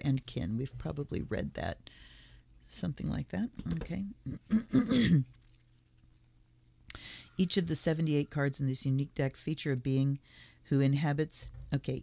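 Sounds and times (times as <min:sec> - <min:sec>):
woman clearing her throat: 0:04.2 - 0:05.4.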